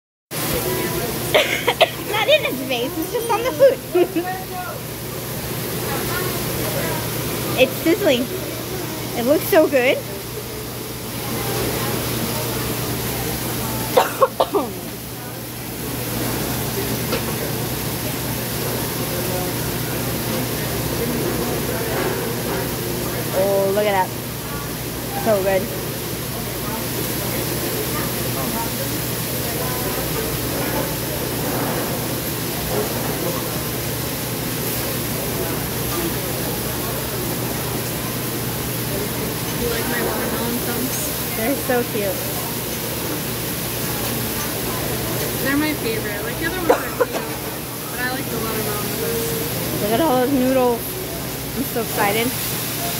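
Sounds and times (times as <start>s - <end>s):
murmur of voices: 0.3s - 52.9s
food sizzling on griddle: 0.4s - 52.9s.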